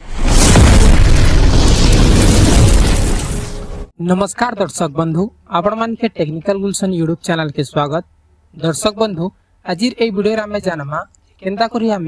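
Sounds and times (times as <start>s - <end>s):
explosion boom and rumble: 0.0s - 3.9s.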